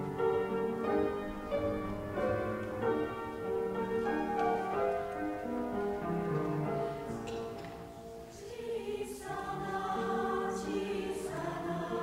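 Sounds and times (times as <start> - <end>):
choir singing: 7.2 - 12.0.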